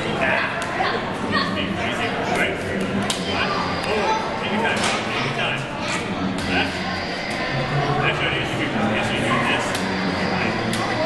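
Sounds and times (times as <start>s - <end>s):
indistinct voices chattering: 0.0s - 11.0s.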